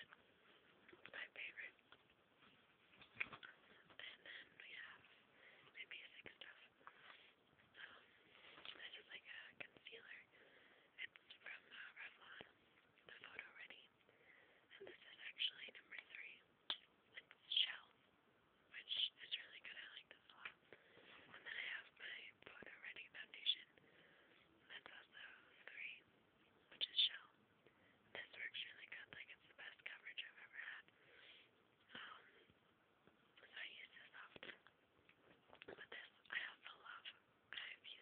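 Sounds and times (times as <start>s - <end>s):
person whispering: 1.0s - 1.8s, 3.3s - 14.0s, 14.7s - 16.5s, 17.1s - 18.0s, 18.7s - 20.6s, 21.3s - 23.8s, 24.6s - 26.0s, 26.7s - 27.4s, 28.1s - 30.9s, 31.9s - 32.4s, 33.4s - 34.7s, 35.6s - 38.0s.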